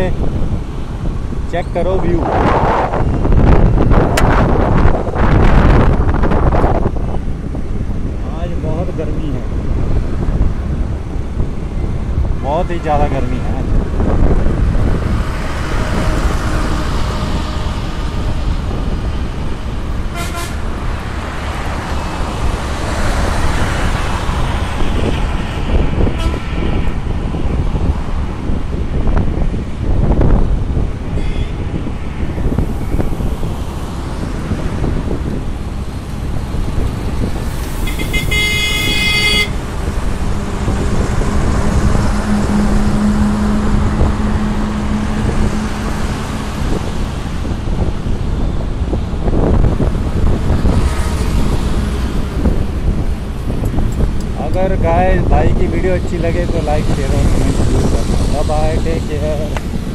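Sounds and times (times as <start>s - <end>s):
highway traffic: 0.0s - 59.9s
low engine hum: 0.0s - 59.9s
wind on microphone: 0.0s - 59.9s
vehicle horn honking: 20.1s - 20.6s, 26.0s - 26.9s, 31.2s - 31.6s, 37.8s - 39.6s.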